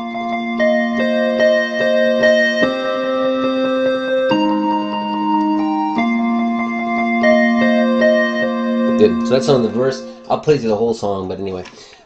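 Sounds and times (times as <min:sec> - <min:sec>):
synth keyboard melody: 0:00.0 - 0:11.2.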